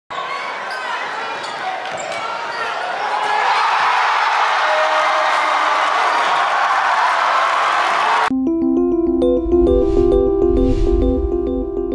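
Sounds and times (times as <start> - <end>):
crowd cheering: 0.1 - 8.3.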